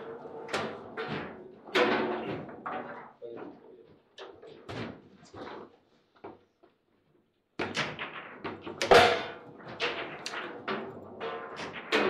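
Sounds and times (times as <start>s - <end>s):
foosball ball and rods knocking: 0.0s - 3.0s, 7.6s - 12.0s.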